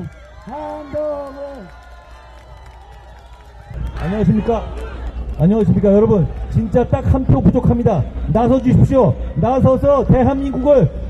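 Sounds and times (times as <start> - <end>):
faint crowd noise: 0.0 - 11.0
street noise: 0.0 - 11.0
low steady rumble: 1.7 - 11.0.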